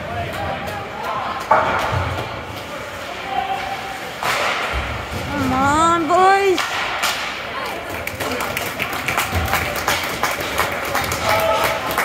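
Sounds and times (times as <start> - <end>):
crowd noise: 0.0 - 12.0
spectators clapping: 7.6 - 12.0.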